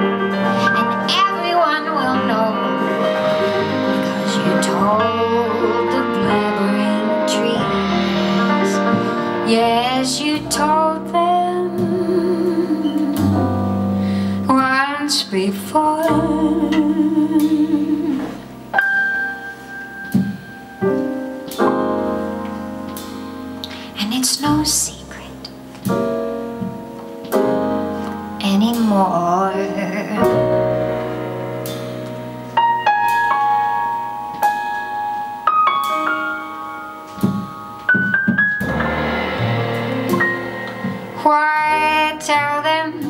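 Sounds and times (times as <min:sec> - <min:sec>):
upright double bass: 0:00.0 - 0:18.8
piano: 0:00.0 - 0:43.0
woman singing: 0:00.6 - 0:13.8, 0:14.4 - 0:18.4, 0:24.0 - 0:25.4, 0:28.4 - 0:30.7, 0:41.2 - 0:43.0.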